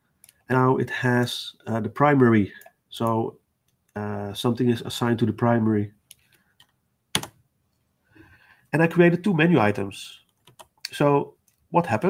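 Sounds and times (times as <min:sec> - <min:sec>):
keyboard key press: 0:07.1 - 0:07.4.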